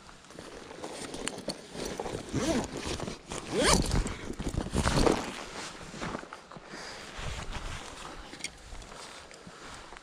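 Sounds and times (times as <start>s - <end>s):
bag handling: 0.1s - 6.6s
backpack zipper drawn: 1.8s - 5.3s.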